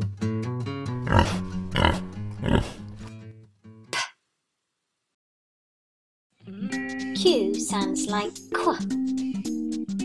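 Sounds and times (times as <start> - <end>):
pig grunts: 1.0 - 3.1
plucked guitar children's music: 6.4 - 10.0.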